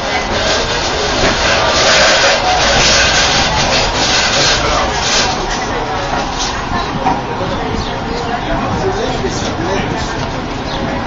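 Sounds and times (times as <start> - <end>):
funicular car rushing along track: 0.0 - 11.0.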